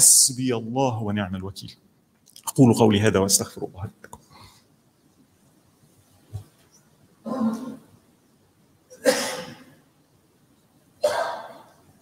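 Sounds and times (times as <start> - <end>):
person clearing throat: 7.2 - 7.9, 8.9 - 9.8, 11.0 - 11.8.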